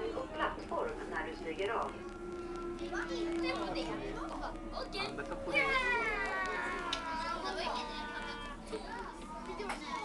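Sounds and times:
people's voices: 0.0s - 10.0s
train hum: 0.0s - 10.0s.

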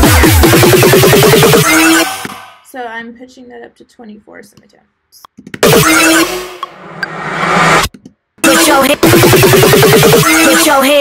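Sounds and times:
electronic burst with pitch swoop: 0.0s - 2.4s, 5.6s - 10.8s
dubstep build-up: 0.0s - 2.6s, 5.6s - 11.0s.

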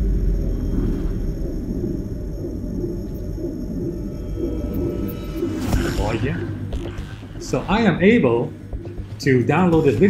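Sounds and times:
deep cinematic rumble: 0.0s - 10.0s.

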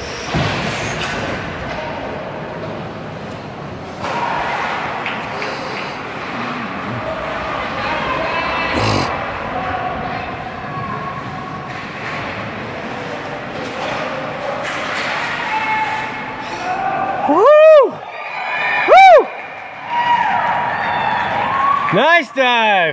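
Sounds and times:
crowd noise: 0.0s - 22.9s.

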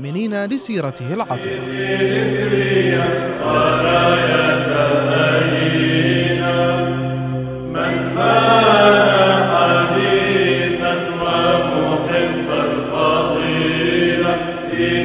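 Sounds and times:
voices chanting: 0.0s - 5.6s.

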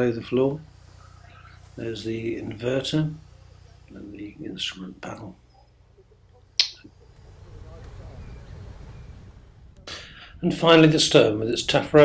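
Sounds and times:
low steady rumbling: 0.0s - 12.0s
sharp click: 6.6s - 6.9s.

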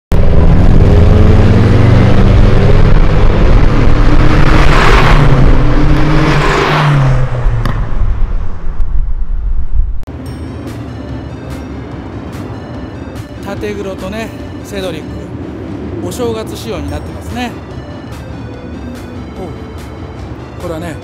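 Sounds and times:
car engines revving: 0.1s - 9.4s, 10.1s - 20.5s
cars driving past: 0.2s - 13.0s.

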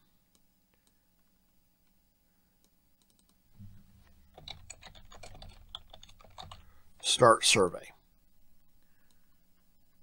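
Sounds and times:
low hum: 3.5s - 5.2s
typing on keyboard: 4.3s - 6.7s.

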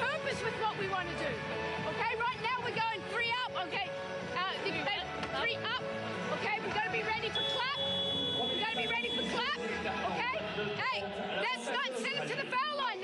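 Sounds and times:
background music: 0.0s - 13.0s
woman addressing players: 2.0s - 9.6s
crowd chatter: 6.3s - 13.0s.

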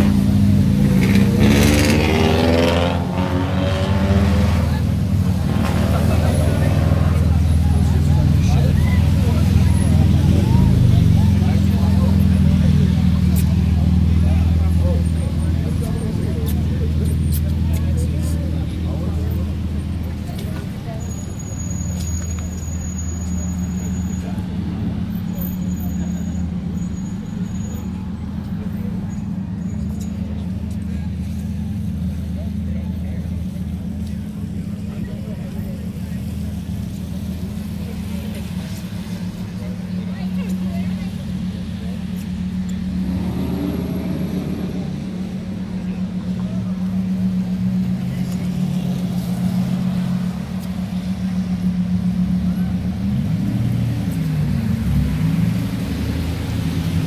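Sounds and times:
traffic on wet street: 0.0s - 57.0s
vehicle engine idling: 4.7s - 57.0s.

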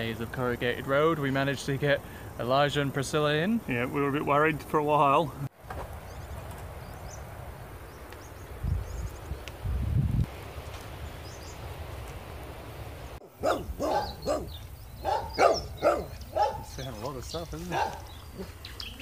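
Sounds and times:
wind buffeting microphone: 5.7s - 10.5s, 13.4s - 19.0s
dog barking: 13.2s - 16.8s, 17.7s - 18.6s.

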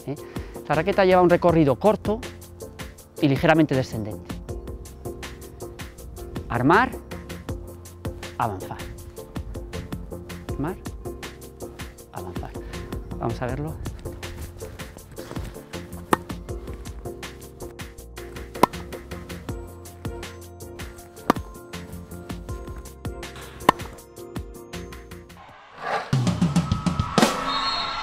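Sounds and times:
background music with steady beat: 0.0s - 25.5s
tennis racket hitting ball: 14.2s - 24.0s.

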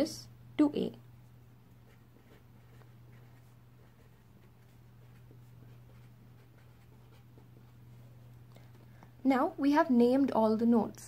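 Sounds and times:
steady low hum: 0.0s - 11.0s
pen scratching on paper: 1.8s - 8.2s.

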